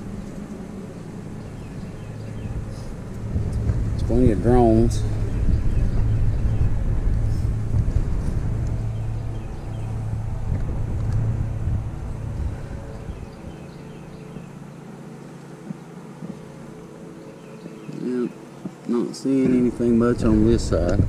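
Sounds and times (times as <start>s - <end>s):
honeybees humming: 0.0s - 21.0s
low steady rumble: 0.0s - 21.0s.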